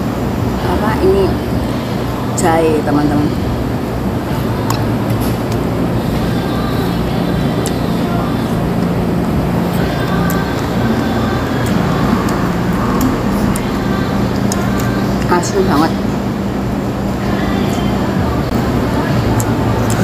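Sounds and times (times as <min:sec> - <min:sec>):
low hum: 0:00.0 - 0:20.0
music: 0:00.0 - 0:20.0
road traffic: 0:00.0 - 0:20.0.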